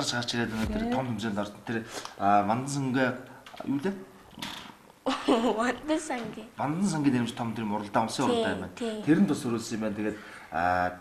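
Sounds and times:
soft breathy hiss: 0:01.7 - 0:02.4
person talking: 0:08.1 - 0:09.3.

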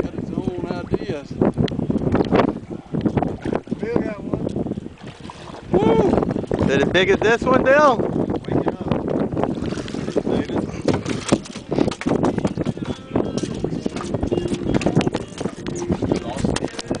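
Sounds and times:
fish flopping on boat deck: 0:09.5 - 0:17.0.

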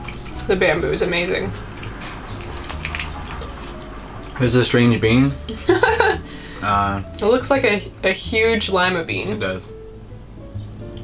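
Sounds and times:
wet chewing sounds: 0:00.0 - 0:00.5, 0:01.5 - 0:04.4.

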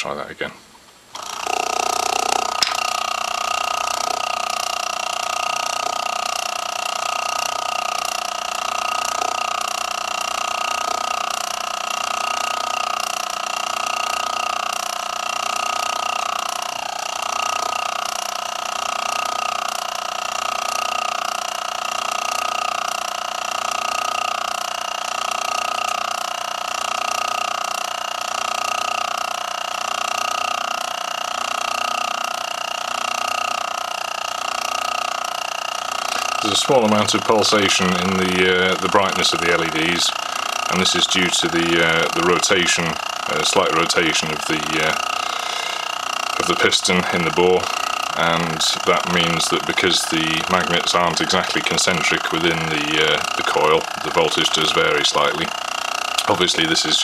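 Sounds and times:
stirling engine generator tone: 0:01.2 - 0:57.0.

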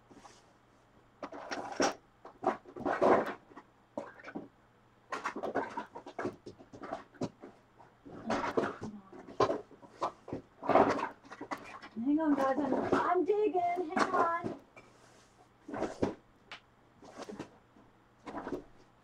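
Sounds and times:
items clattering in a drawer: 0:01.2 - 0:04.5, 0:05.1 - 0:15.0, 0:15.6 - 0:16.2, 0:18.2 - 0:18.7.

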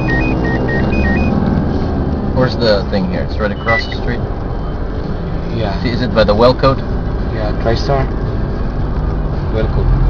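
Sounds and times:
high electronic beeps: 0:00.0 - 0:01.4, 0:03.4 - 0:04.8.

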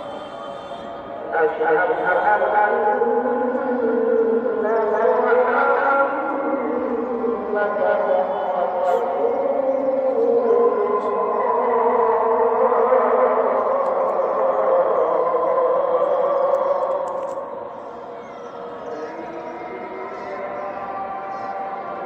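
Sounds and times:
person chanting in held notes: 0:00.0 - 0:22.0.

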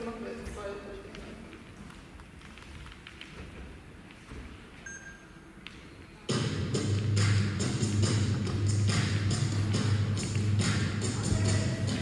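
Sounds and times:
faint high beep: 0:04.8 - 0:05.4.

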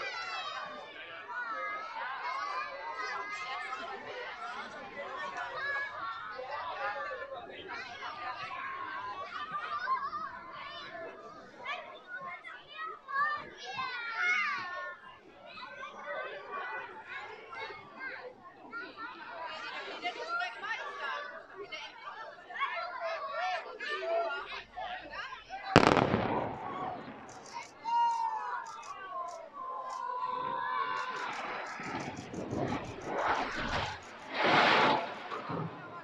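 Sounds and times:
crowd chattering: 0:00.0 - 0:36.0
demolition charge bang: 0:25.8 - 0:27.6.

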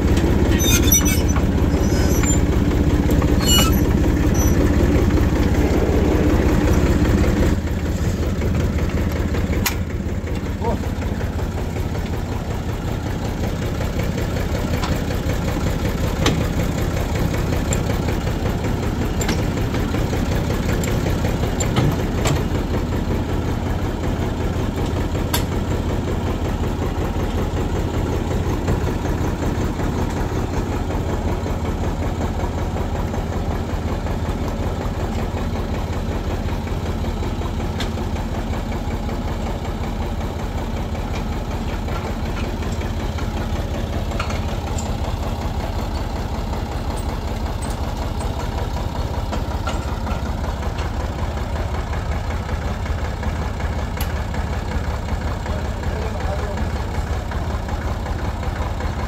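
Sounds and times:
tractor engine idling: 0:00.0 - 0:59.0.

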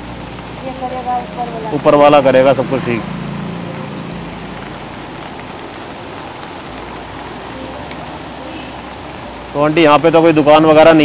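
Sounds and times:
roadside outdoor background hiss: 0:00.0 - 0:11.0.

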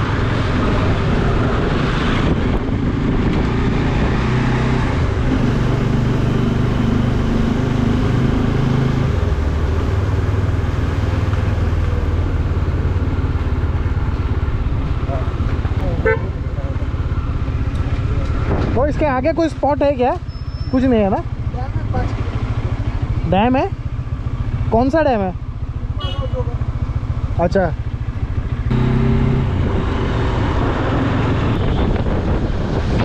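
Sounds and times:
road and wind noise: 0:00.0 - 0:33.0
motorcycle engine running: 0:09.2 - 0:32.6.

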